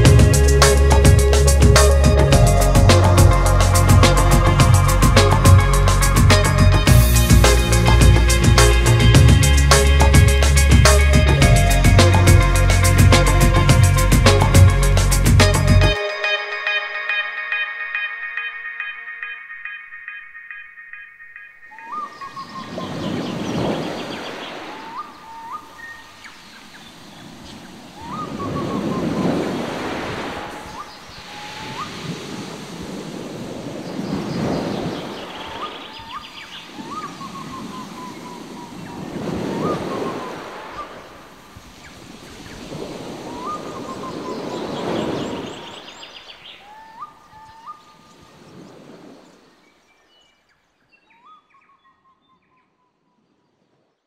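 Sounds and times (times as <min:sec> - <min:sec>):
waves breaking on shore: 0:21.8 - 0:50.0.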